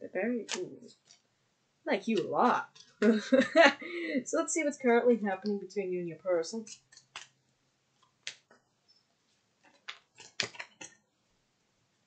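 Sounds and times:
cards being shuffled: 0:06.7 - 0:07.4, 0:08.0 - 0:08.6, 0:09.6 - 0:11.0.

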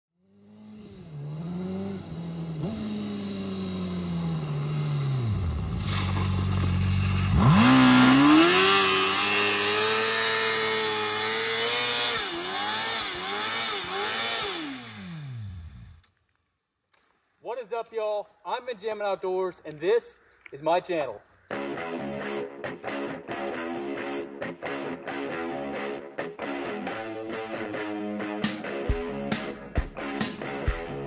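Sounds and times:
motorcycle engine revving: 0:00.2 - 0:16.0
rear tyre spinning: 0:00.2 - 0:16.0.

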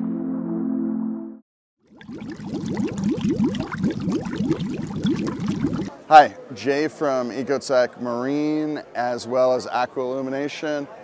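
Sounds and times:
water bubbling blips: 0:01.9 - 0:05.9.

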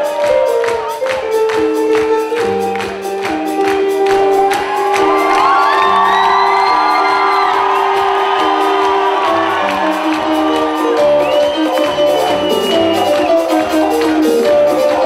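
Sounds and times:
drums: 0:00.0 - 0:15.0
keyboards: 0:00.0 - 0:15.0.

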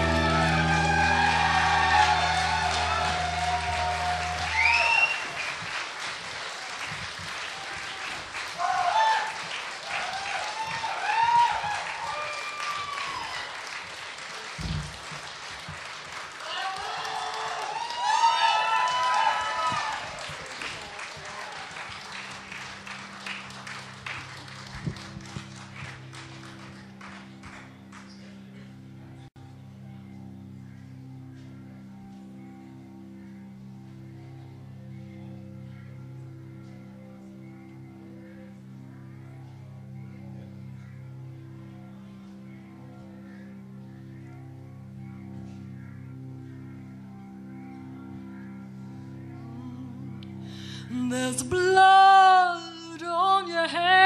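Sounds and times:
band's held low chord: 0:00.0 - 0:05.5
shouts and whistles: 0:00.0 - 0:05.5
audience applauding and cheering: 0:00.0 - 0:28.4.

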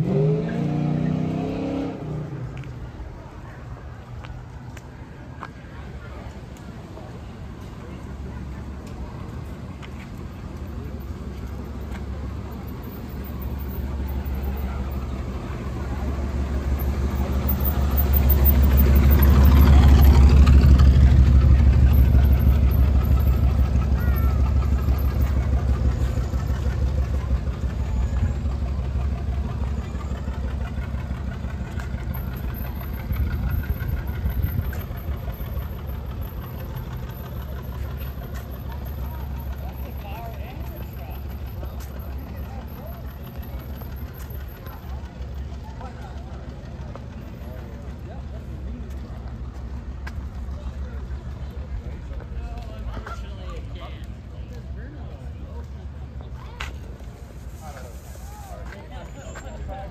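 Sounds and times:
car engine driving past: 0:00.0 - 0:02.8.

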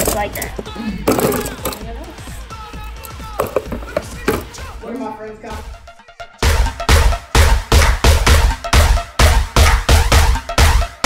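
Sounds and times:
plastic cups clattering in tray: 0:00.0 - 0:01.9, 0:03.0 - 0:04.6
background music: 0:00.0 - 0:11.0.

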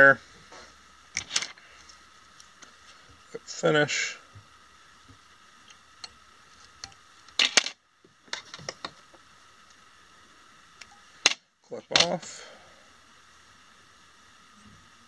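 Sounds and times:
faint high hum: 0:00.0 - 0:15.0.

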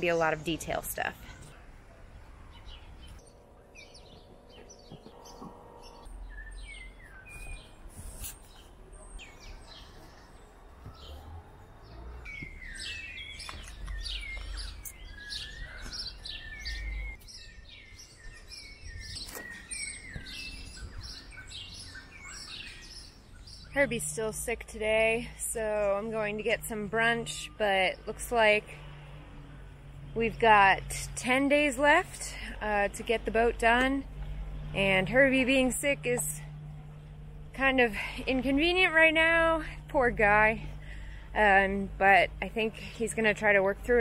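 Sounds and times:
small birds chirping: 0:00.0 - 0:24.2.

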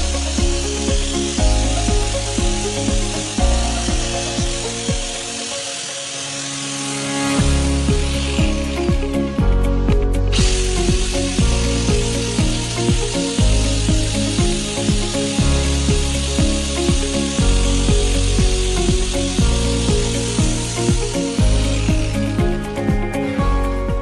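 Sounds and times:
angle grinder on metal: 0:00.0 - 0:22.9
background music with steady beat: 0:00.0 - 0:24.0.

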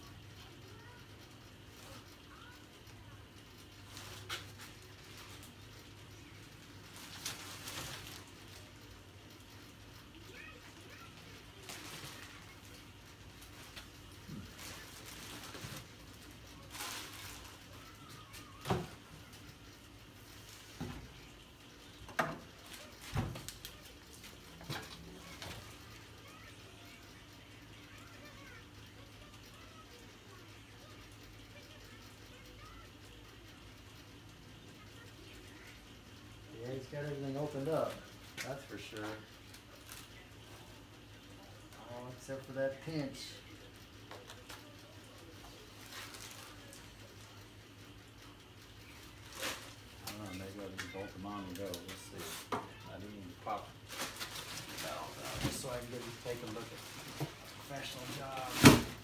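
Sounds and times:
plastic wrapping rustling: 0:16.7 - 0:17.5, 0:49.2 - 0:50.3, 0:53.8 - 0:59.0.

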